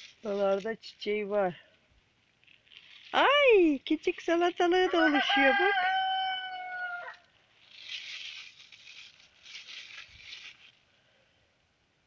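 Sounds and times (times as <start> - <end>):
leaves rustling: 0.0 - 11.6
rooster crowing: 4.9 - 7.2.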